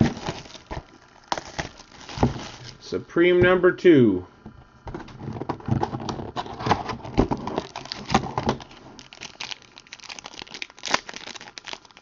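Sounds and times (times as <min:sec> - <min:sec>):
plastic wrap crinkling: 0:00.0 - 0:02.8, 0:06.0 - 0:12.0.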